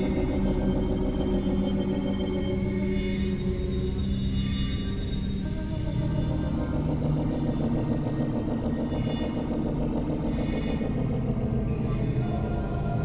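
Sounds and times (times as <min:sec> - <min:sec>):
synthesizer drone music: 0:00.0 - 0:13.0.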